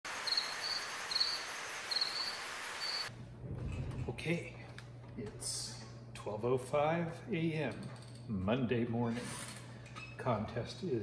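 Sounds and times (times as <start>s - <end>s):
steady high hiss: 0.1s - 3.1s
cricket chirping: 0.2s - 3.1s.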